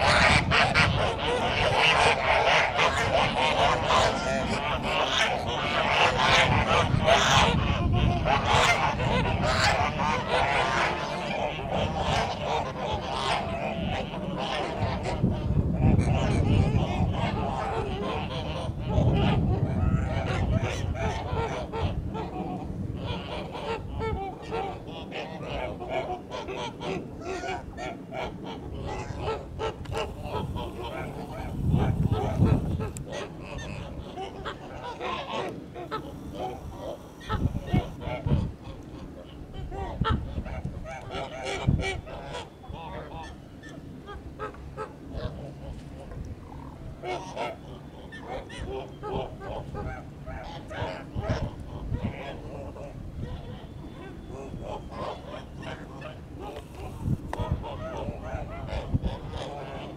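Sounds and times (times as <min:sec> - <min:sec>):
geese honking: 0:00.0 - 0:59.9.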